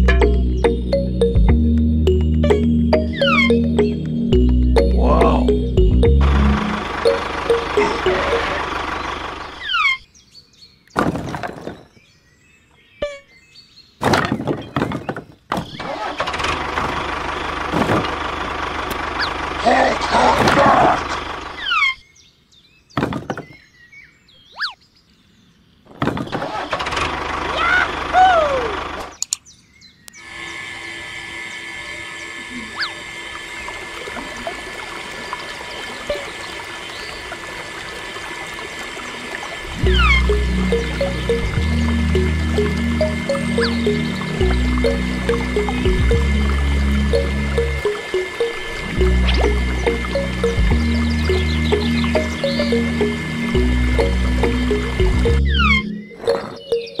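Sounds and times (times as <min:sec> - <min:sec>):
music with steady beat: 0:00.0 - 0:08.5, 0:40.3 - 0:55.5
small motor running a pump: 0:30.2 - 0:39.7.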